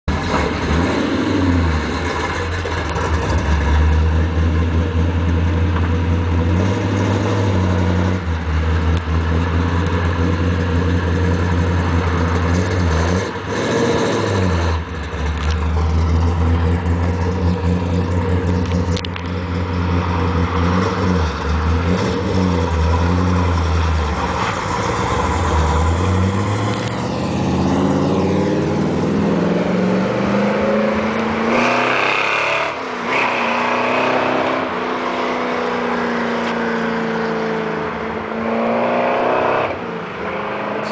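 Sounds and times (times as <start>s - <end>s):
car engine running and revving: 0.0s - 40.9s.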